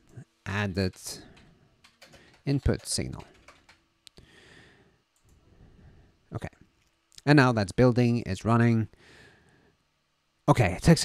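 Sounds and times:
computer clicks: 0.9s - 3.8s
faint breath: 4.2s - 6.2s, 9.0s - 9.8s.

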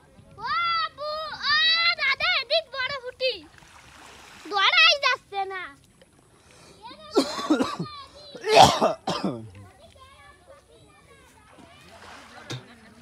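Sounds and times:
people talking: 6.8s - 13.0s.

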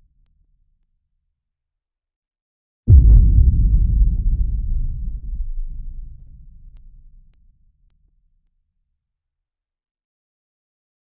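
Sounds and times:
deep boom: 2.9s - 7.4s
low rumble: 2.9s - 7.4s.

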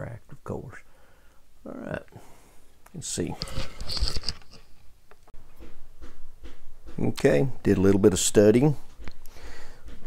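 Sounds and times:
rustling: 2.6s - 7.0s.

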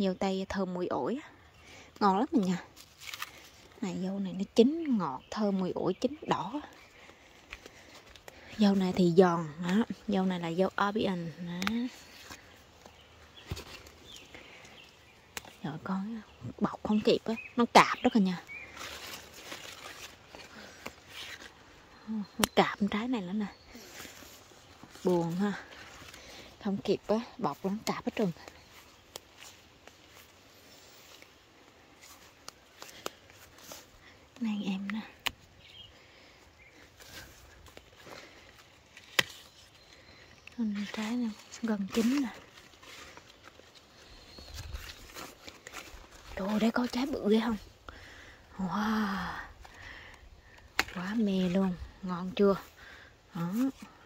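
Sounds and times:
leaves rustling by hand: 1.6s - 54.0s.

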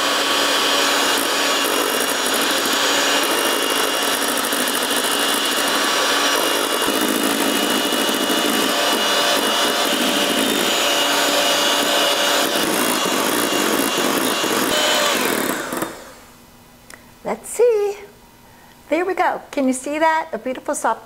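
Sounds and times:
electric mixer whipping in metal bowl: 0.0s - 16.2s.

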